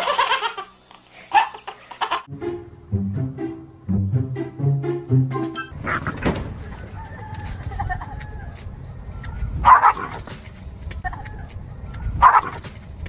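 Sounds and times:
dog barking: 9.2s - 10.3s, 12.1s - 12.6s.

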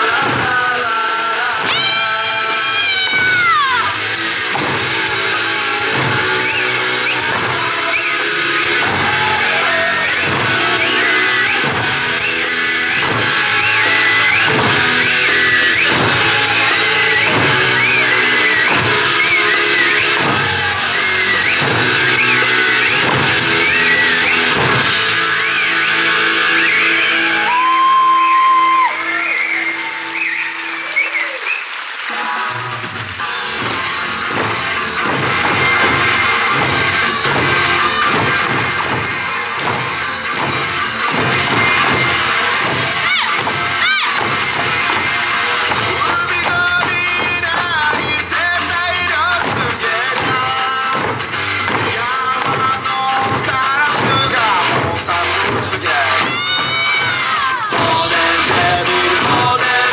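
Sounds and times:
drums struck on a steady beat: 0.0s - 0.9s, 2.8s - 25.3s, 32.5s - 59.9s.

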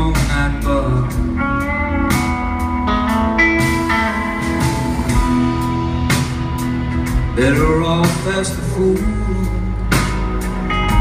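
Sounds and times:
drum kit: 0.0s - 11.0s
electric guitars holding long notes: 0.0s - 11.0s
rock band playing: 0.0s - 11.0s.

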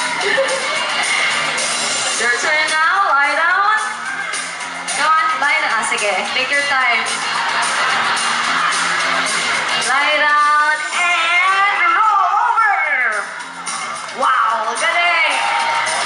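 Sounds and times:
voices whooping and calling: 6.6s - 16.0s.

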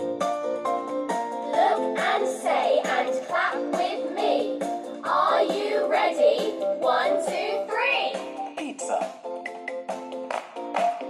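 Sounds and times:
musical backing with steady beat: 0.0s - 11.0s.

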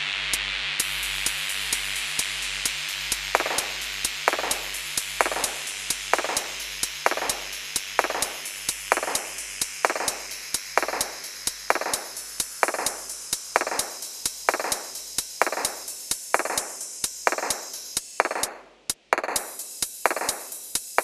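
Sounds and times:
percussive background music: 3.1s - 21.0s.

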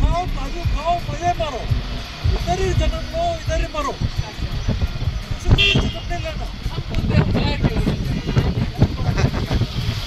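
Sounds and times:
low background rumble: 0.0s - 10.0s
people talking: 2.3s - 4.6s, 5.3s - 9.6s.

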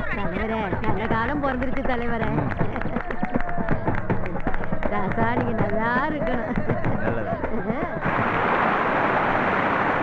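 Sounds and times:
steady rushing noise: 8.0s - 10.0s.

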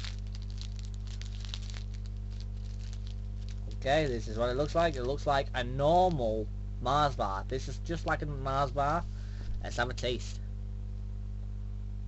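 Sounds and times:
plastic wrapper crinkling: 0.0s - 5.4s
steady low hum: 0.0s - 12.0s.

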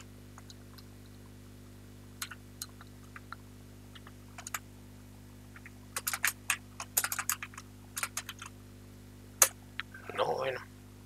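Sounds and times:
keyboard typing: 2.2s - 4.6s, 5.5s - 8.5s.

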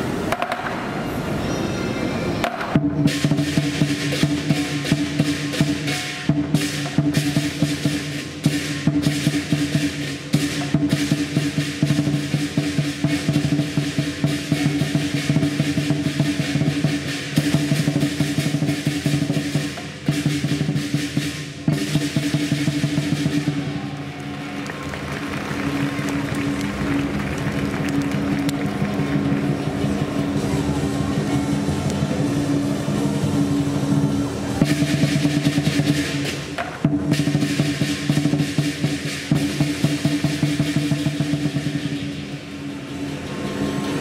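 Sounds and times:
drum roll: 0.0s - 1.0s, 2.4s - 44.0s
crashing cymbals: 0.0s - 24.1s, 28.8s - 44.0s
gong: 1.0s - 24.5s, 25.6s - 44.0s
lion drum beating: 2.4s - 44.0s.

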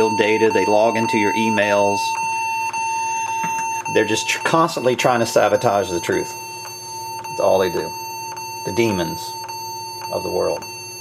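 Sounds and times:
high-pitched computer beep: 0.0s - 11.0s.

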